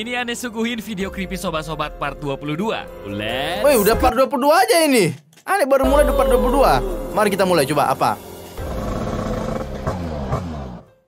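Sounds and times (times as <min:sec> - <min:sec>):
background music: 0:00.0 - 0:11.0
cartoon scooter engine: 0:08.6 - 0:10.9.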